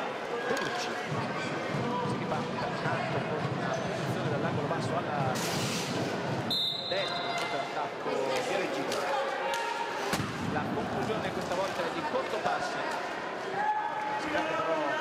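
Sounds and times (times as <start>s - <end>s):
spectators murmuring and calling: 0.0s - 15.0s.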